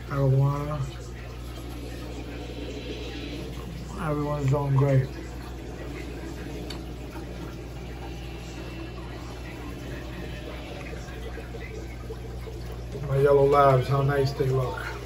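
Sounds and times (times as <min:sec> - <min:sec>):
low pump hum: 0:00.0 - 0:15.0
water bubbling and trickling: 0:00.0 - 0:15.0.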